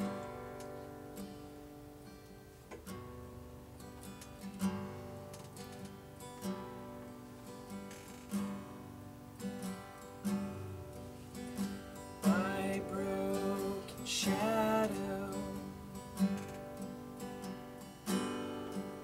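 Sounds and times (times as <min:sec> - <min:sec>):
acoustic guitar playing: 0:00.0 - 0:19.0.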